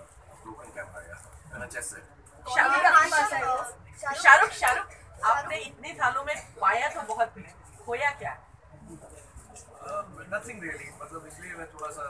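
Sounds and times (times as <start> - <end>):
murmur of people talking: 0.0 - 12.0.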